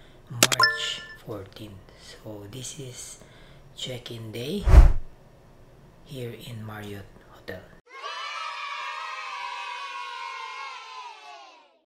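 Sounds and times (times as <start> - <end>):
children cheering: 7.9 - 11.8.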